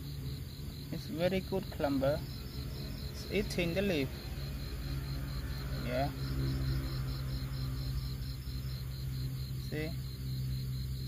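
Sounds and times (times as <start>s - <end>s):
night insects trilling: 0.0s - 11.0s
steady low hum: 0.0s - 11.0s.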